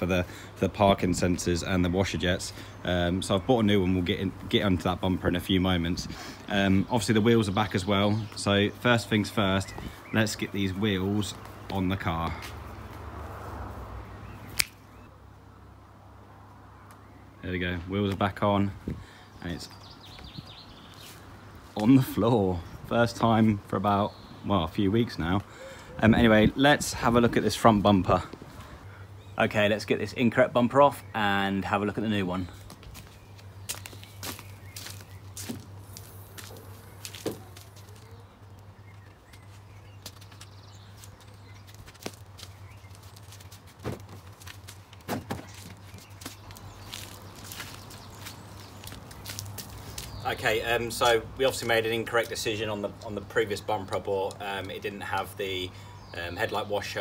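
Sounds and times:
finger snap: 0:14.5 - 0:14.8
footsteps in flip-flops: 0:32.6 - 0:50.4.

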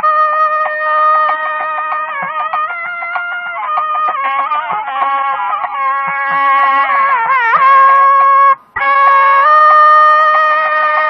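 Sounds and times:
double-reed pipe playing: 0:00.0 - 0:11.0.

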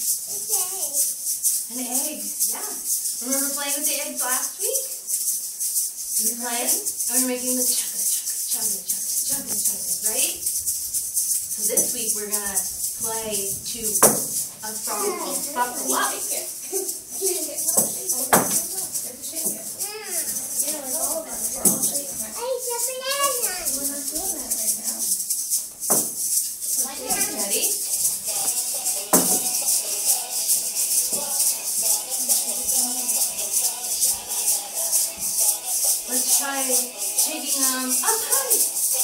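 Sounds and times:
children's song: 0:00.0 - 0:39.0
egg shakers rattling: 0:00.0 - 0:39.0.

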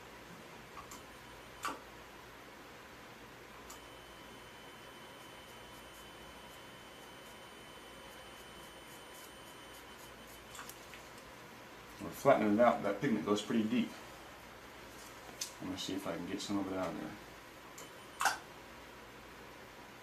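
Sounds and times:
high electronic tone: 0:03.7 - 0:10.7
sharp click: 0:17.8 - 0:18.4.

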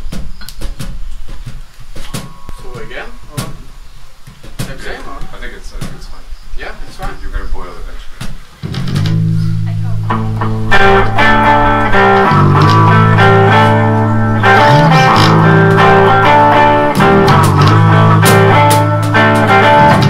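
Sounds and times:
electric and acoustic guitars jamming: 0:08.6 - 0:20.0.

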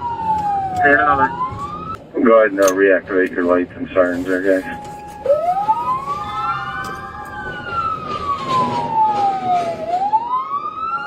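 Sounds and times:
police siren wailing: 0:00.0 - 0:02.5, 0:03.1 - 0:11.0.

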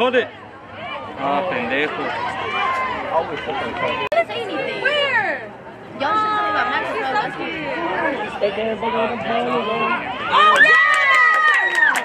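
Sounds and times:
spectators chattering and calling out: 0:00.0 - 0:12.0.

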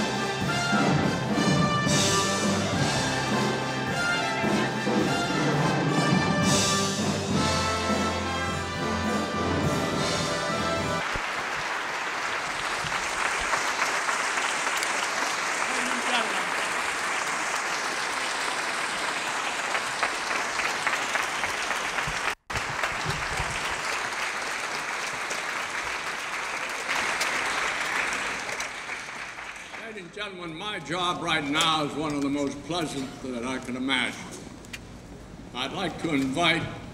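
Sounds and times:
music: 0:00.0 - 0:11.2
audience applauding: 0:10.3 - 0:30.2.

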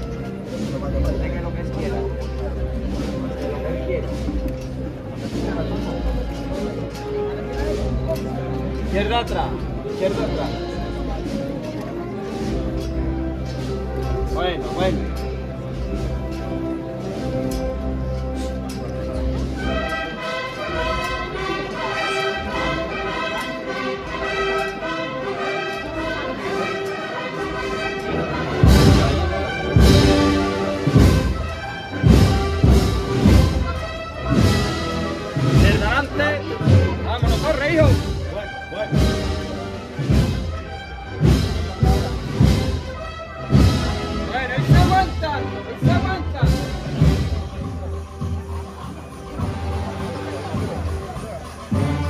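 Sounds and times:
brass and woodwind chords: 0:00.0 - 0:52.0
heavy drum beats: 0:28.4 - 0:52.0.

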